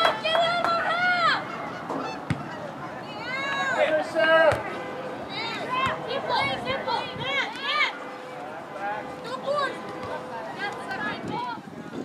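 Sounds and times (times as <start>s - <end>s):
players shouting: 0.0s - 11.6s.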